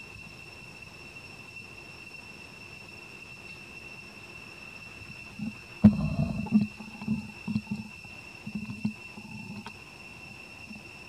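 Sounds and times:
monkey grunting: 0:05.4 - 0:09.7.

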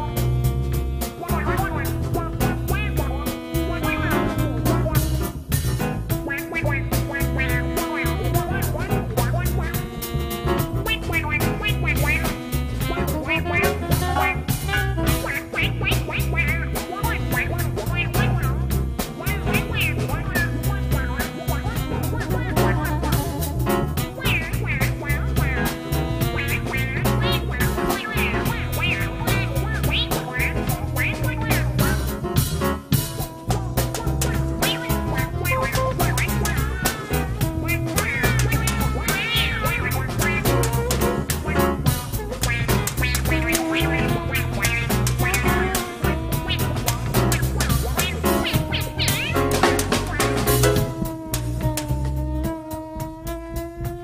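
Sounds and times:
double bass: 0:00.0 - 0:54.0
drums: 0:00.0 - 0:54.0
soprano saxophone: 0:00.0 - 0:54.0.

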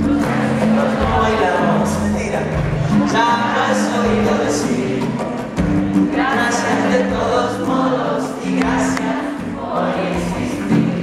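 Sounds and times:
audience singing along: 0:00.0 - 0:11.0
band playing: 0:00.0 - 0:11.0.

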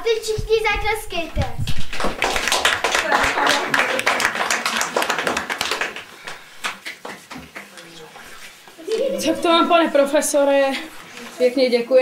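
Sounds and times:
audience applauding: 0:02.0 - 0:08.0.

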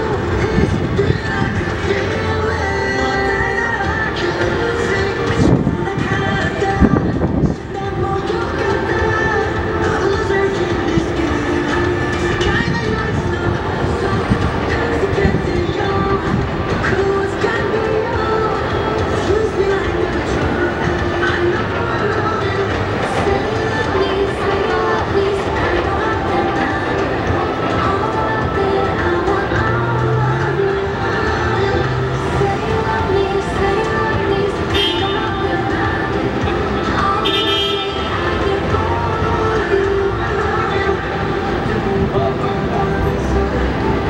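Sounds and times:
music from outdoor screens: 0:00.0 - 0:44.0
song over loudspeakers: 0:00.0 - 0:44.0
traffic rumble: 0:00.0 - 0:44.0.

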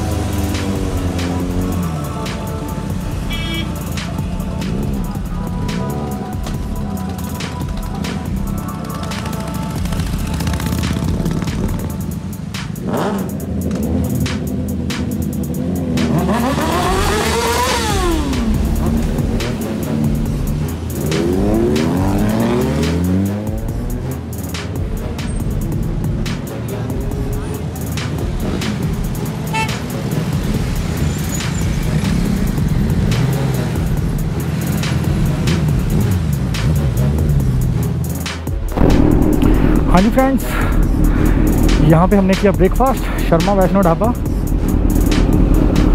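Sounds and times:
hip-hop beat: 0:00.0 - 0:45.9
motorcycle engine revving: 0:00.0 - 0:45.9.

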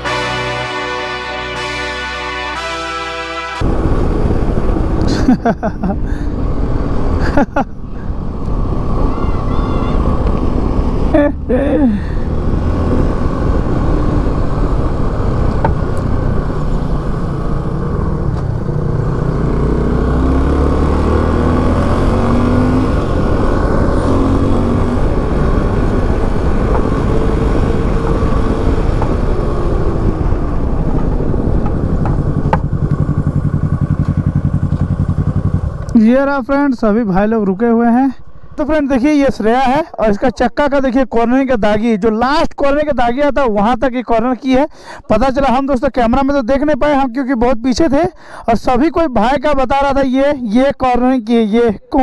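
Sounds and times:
motorcycle engine running: 0:13.1 - 0:36.0.

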